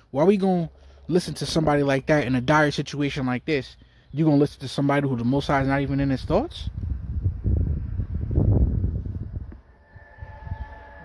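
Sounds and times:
low rumbling wind noise: 0:05.4 - 0:11.0
faint steady high tone: 0:09.5 - 0:11.0.

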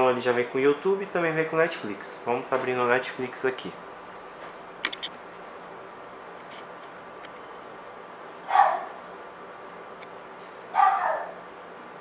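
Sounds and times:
dog barking: 0:08.5 - 0:09.0, 0:10.7 - 0:11.4.

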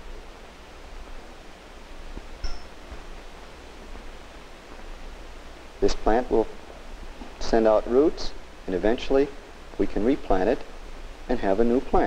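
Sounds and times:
film soundtrack hiss: 0:00.0 - 0:12.0.

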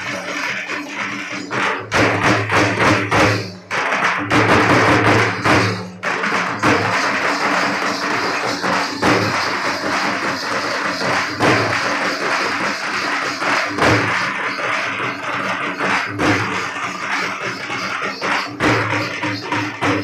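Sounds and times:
jingling and percussion: 0:00.0 - 0:20.0.

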